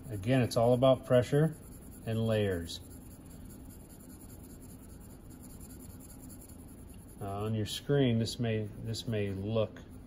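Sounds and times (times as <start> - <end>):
pencil scratching on paper: 0.0 - 10.0.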